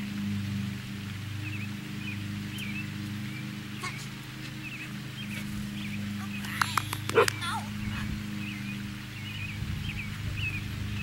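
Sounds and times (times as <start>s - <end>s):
birds chirping: 0.0s - 11.0s
steady low hum: 0.0s - 11.0s
dog barking and yipping: 6.2s - 8.0s.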